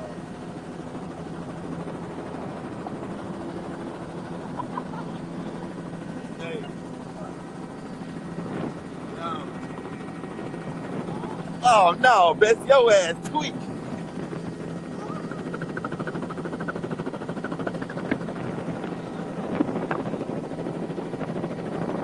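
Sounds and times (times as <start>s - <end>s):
helicopter engine and rotor drone: 0.0s - 22.0s.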